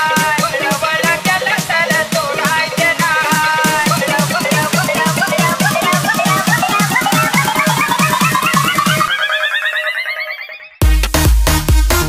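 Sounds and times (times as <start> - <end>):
heavy bass and kick drum: 0.0 - 9.1, 10.8 - 12.0
rising synth figure: 5.3 - 10.8.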